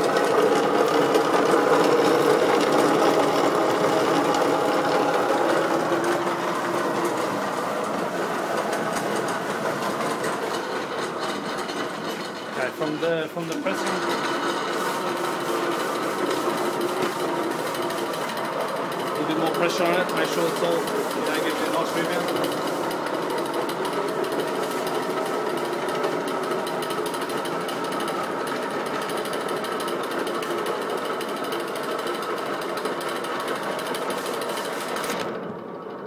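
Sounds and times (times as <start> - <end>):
pressing machine running: 0.0 - 36.0.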